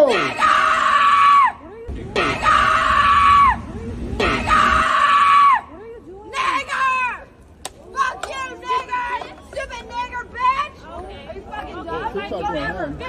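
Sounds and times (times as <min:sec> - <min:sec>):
woman yelling: 0:05.4 - 0:07.3, 0:07.9 - 0:10.8.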